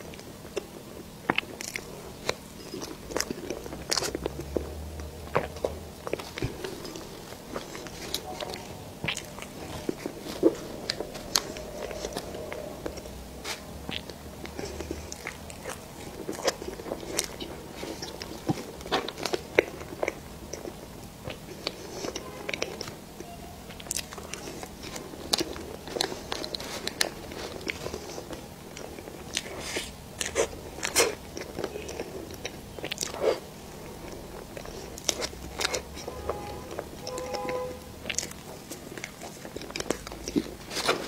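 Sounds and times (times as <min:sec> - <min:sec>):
chewing cake: 0:00.0 - 0:41.0
sharp mouth clicks: 0:01.3 - 0:18.2.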